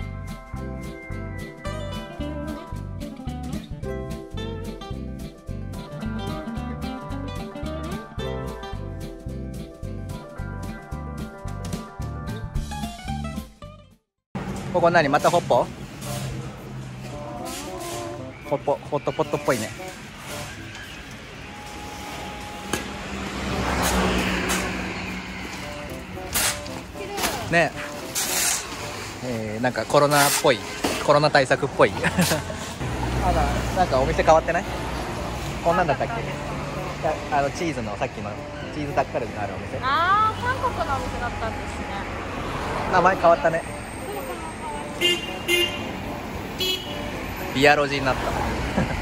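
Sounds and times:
road traffic: 0.0 - 13.2, 14.3 - 49.0
street hum: 0.0 - 13.6, 14.3 - 49.0
vehicle passing by: 21.9 - 28.1, 31.6 - 45.0, 45.9 - 49.0
vehicle horn tooting: 44.3 - 46.0, 46.6 - 47.1.

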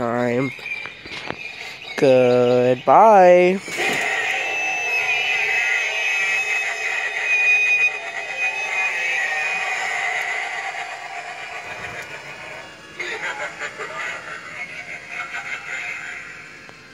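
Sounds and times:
high wavering spooky sound: 3.5 - 16.9.

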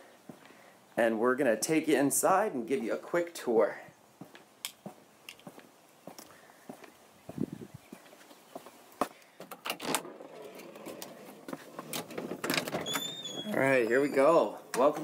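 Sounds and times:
footsteps: 4.2 - 15.0
front door unlatched and opening: 9.5 - 15.0.

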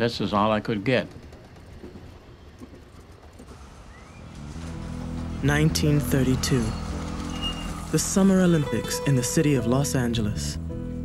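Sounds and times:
short rising tone: 6.2 - 8.3.

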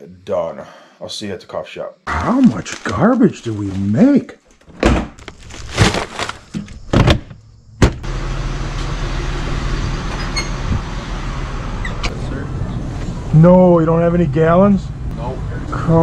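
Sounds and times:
objects being handled: 2.4 - 6.9.

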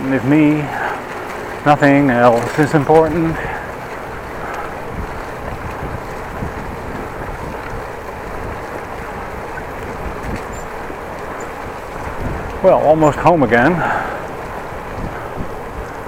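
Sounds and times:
bicycle rolling over path: 0.0 - 16.0
wind noise on microphone: 0.8 - 16.0.

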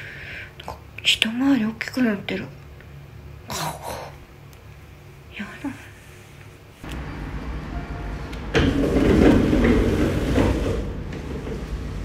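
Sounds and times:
loud rushing noise: 6.8 - 12.0.

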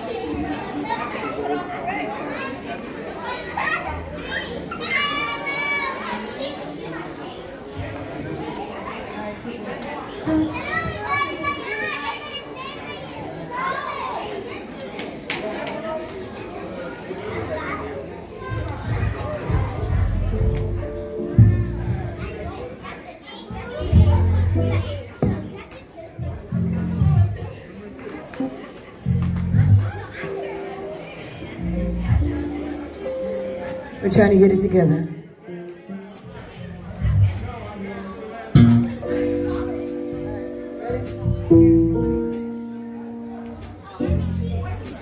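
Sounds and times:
chatter in a large hall: 0.0 - 45.0
keyboard: 18.8 - 22.6, 23.5 - 25.4, 29.0 - 35.2, 36.2 - 45.0
electric bass: 23.8 - 24.9, 26.4 - 27.4, 36.6 - 37.7, 38.6 - 42.3
drum kit: 23.8 - 25.5, 38.6 - 40.1, 40.9 - 42.6.

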